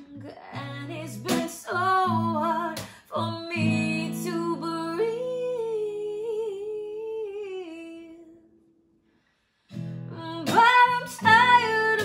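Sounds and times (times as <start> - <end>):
woman singing: 0.0 - 8.6, 10.1 - 12.0.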